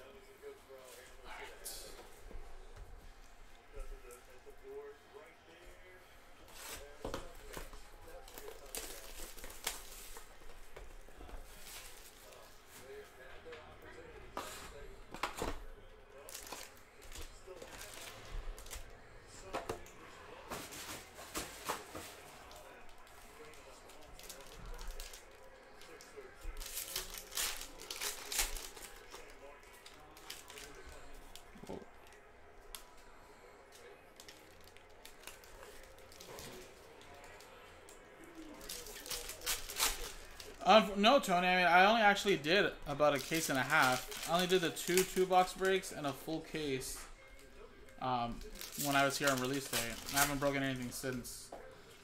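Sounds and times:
foil wrappers crinkling and tearing: 0:06.5 - 0:13.0, 0:15.4 - 0:18.9, 0:20.4 - 0:32.9, 0:33.7 - 0:37.6, 0:38.4 - 0:40.8, 0:42.2 - 0:47.5, 0:48.2 - 0:51.2.

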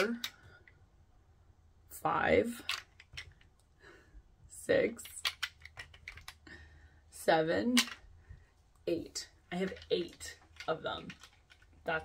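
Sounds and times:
plastic tubes clicking together: 0:00.0 - 0:00.8, 0:02.5 - 0:03.7, 0:05.0 - 0:06.5, 0:07.7 - 0:08.1, 0:09.5 - 0:12.0.

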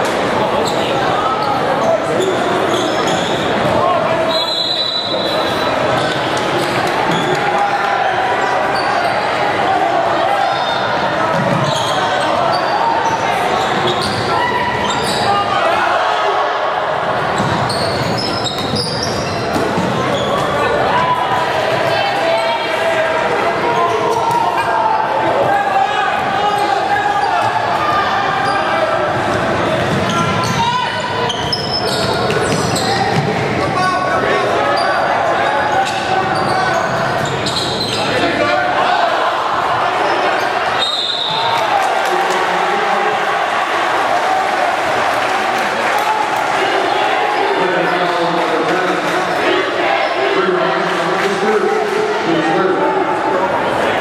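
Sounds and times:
spectators chattering: 0:00.0 - 0:54.0
players shouting: 0:00.1 - 0:54.0.

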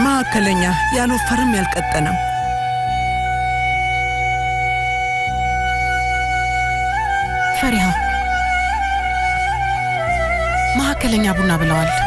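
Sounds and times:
long held note: 0:00.0 - 0:12.0
low sustained drone: 0:00.0 - 0:12.0.

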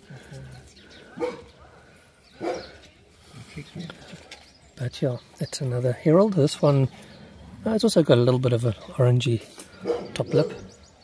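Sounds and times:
dog barking: 0:01.2 - 0:01.5, 0:02.4 - 0:02.7, 0:09.8 - 0:10.6.

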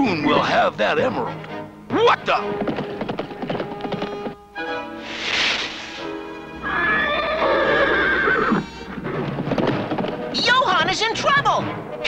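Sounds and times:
background music: 0:00.0 - 0:12.0
brief rushing noise: 0:05.0 - 0:06.2
cartoon horse whinnying: 0:06.6 - 0:09.0.

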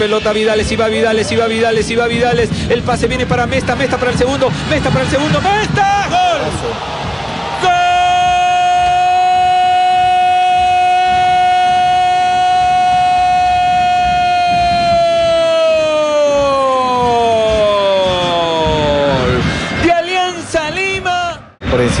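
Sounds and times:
crowd noise: 0:00.0 - 0:22.0.

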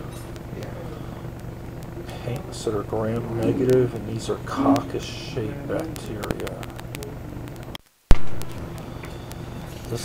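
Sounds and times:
low background noise: 0:00.0 - 0:10.0
loud pop: 0:08.1 - 0:08.5.

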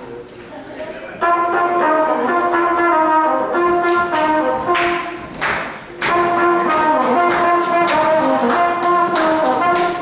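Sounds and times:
brass horn melody: 0:01.2 - 0:10.0.

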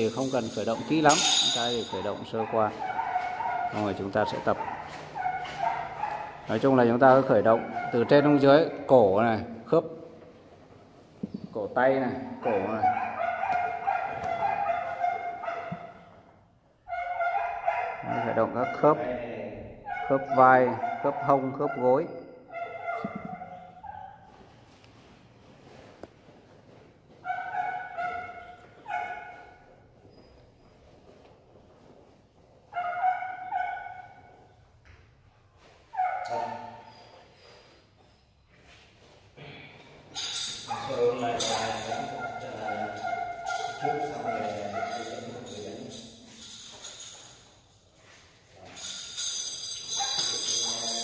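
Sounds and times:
jingling percussive music: 0:00.0 - 0:02.1, 0:48.7 - 0:51.0.

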